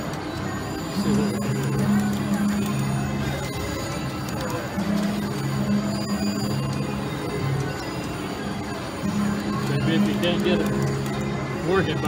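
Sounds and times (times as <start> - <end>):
electronic slot machine music: 0.0 - 12.0.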